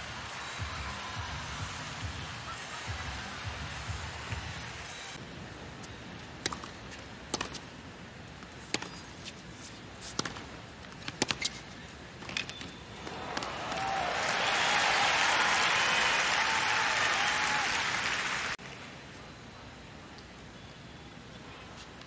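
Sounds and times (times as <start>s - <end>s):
tennis ball struck with rackets: 6.4s - 7.6s, 10.0s - 11.6s
crowd applauding and cheering: 13.1s - 18.6s.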